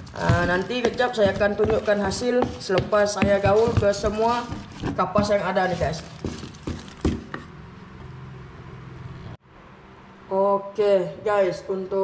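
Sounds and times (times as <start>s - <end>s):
spatula knocking plastic container: 0.0s - 7.5s
spatula scraping: 0.0s - 7.6s.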